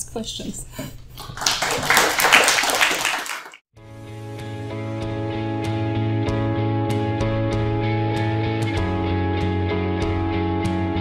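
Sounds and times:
audience applauding: 1.2s - 3.6s.

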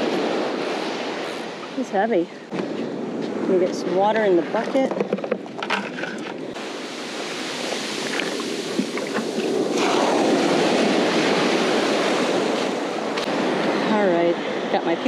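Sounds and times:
surf washing up beach: 0.0s - 4.9s, 5.5s - 15.0s
handling clicks and knocks: 4.6s - 6.4s
wave rushing in: 6.5s - 14.2s.

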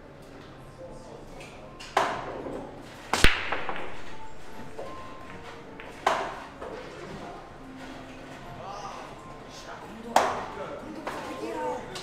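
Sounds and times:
cue ball cracking into racked balls: 1.9s - 7.0s
pool balls clattering: 1.9s - 9.2s.

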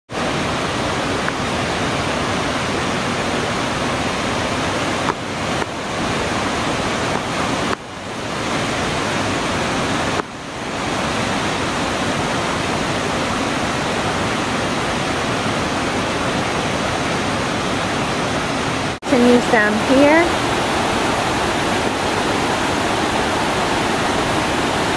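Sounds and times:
waterfall roaring: 0.1s - 24.9s.

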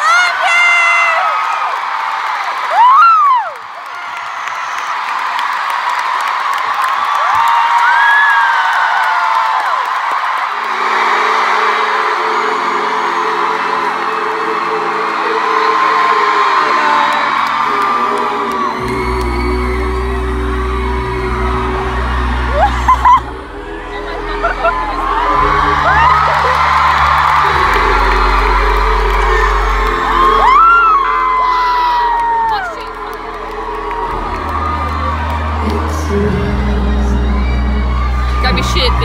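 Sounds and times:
crowd cheering and screaming: 0.0s - 39.0s
held chords over sound system: 17.3s - 39.0s
deep bass: 18.7s - 39.0s.

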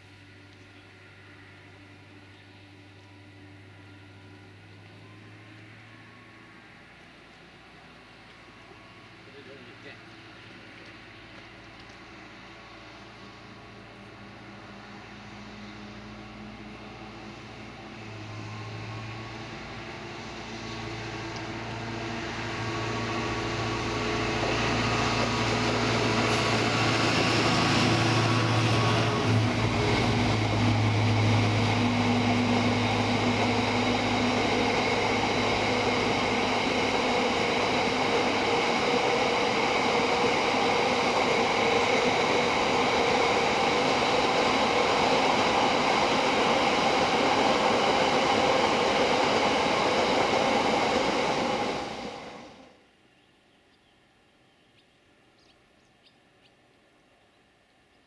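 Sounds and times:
wagons rumbling on rails: 0.0s - 52.8s
diesel locomotive engine: 0.0s - 53.1s.

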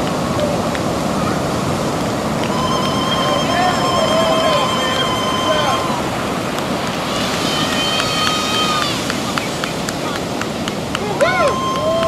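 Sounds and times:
long high steady tone: 0.0s - 12.0s
ocean surf breaking: 0.0s - 12.0s
people calling: 0.0s - 12.0s.

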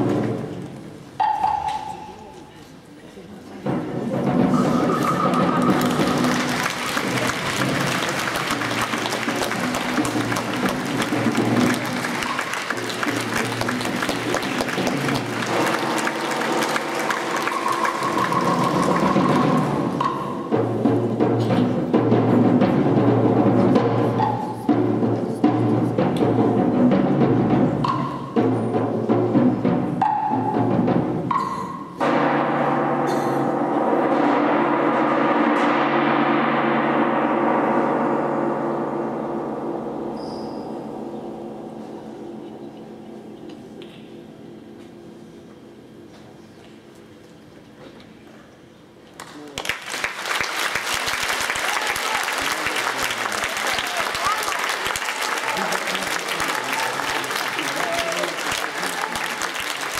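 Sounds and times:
heavy drum strikes: 3.6s - 44.8s
chamber ensemble playing: 4.4s - 20.2s.

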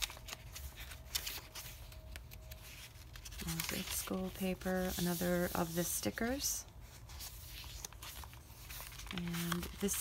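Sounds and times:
paper pages rustling: 0.0s - 10.0s.

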